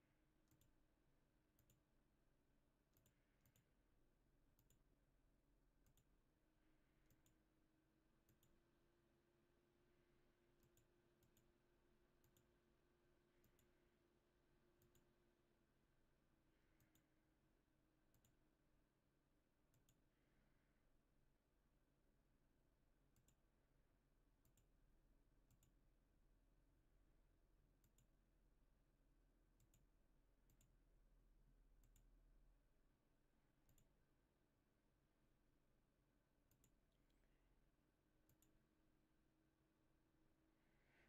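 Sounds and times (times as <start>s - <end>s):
faint steady hum: 0.0s - 41.0s
computer mouse clicking: 0.4s - 0.7s, 1.6s - 1.8s, 2.9s - 3.7s, 4.6s - 4.8s, 5.8s - 6.1s, 7.0s - 7.4s, 8.2s - 8.6s, 10.6s - 11.5s, 12.2s - 12.5s, 13.4s - 13.7s, 14.8s - 15.1s, 16.8s - 17.1s, 18.1s - 18.4s, 25.5s - 25.7s, 27.8s - 28.1s, 29.6s - 29.8s, 33.6s - 33.9s, 38.3s - 38.6s.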